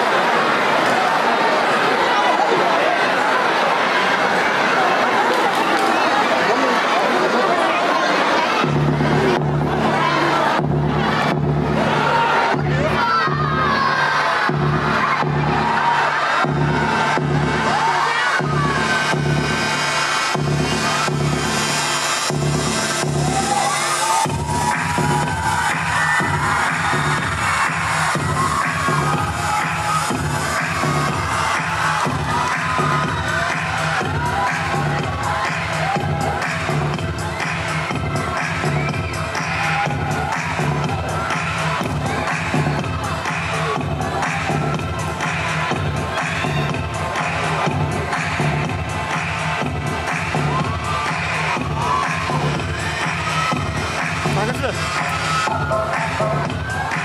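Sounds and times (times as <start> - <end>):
audience cheering and shrieking: 0.0 - 57.0
loud dance music: 0.0 - 57.0.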